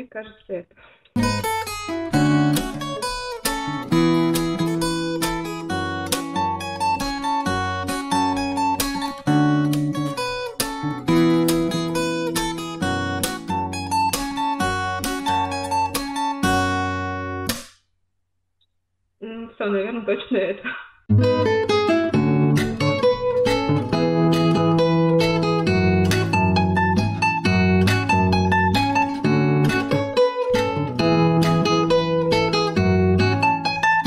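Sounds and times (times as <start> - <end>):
fingerstyle acoustic guitar: 1.1 - 17.7, 21.1 - 34.0.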